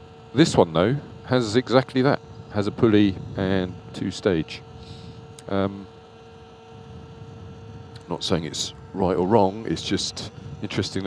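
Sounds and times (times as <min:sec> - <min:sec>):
electric bike motor humming: 0:00.0 - 0:11.0
road and wind noise: 0:00.0 - 0:11.0.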